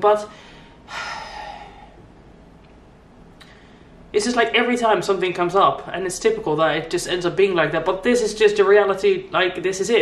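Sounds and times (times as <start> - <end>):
woman sighing: 0.9 - 2.0.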